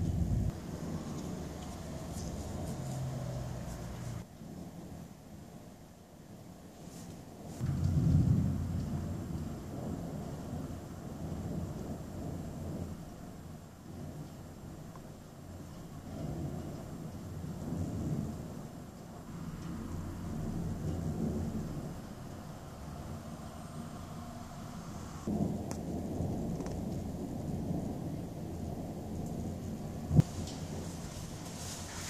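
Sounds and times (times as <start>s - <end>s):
thunder rumbling: 0.0s - 5.8s, 7.6s - 32.0s
sharp thunder crack: 7.6s - 13.0s, 30.0s - 30.8s.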